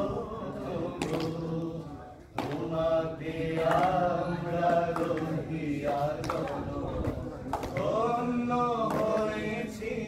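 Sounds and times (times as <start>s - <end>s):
voices chanting: 0.0s - 10.0s.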